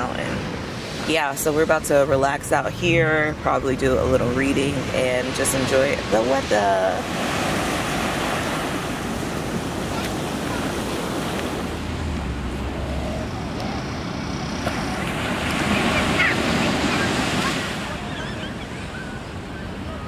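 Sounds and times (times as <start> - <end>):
small waves breaking on sand: 4.2 - 19.8.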